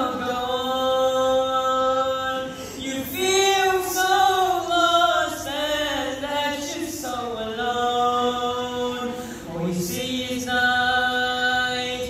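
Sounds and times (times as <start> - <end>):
young man singing unaccompanied: 0.0 - 12.0.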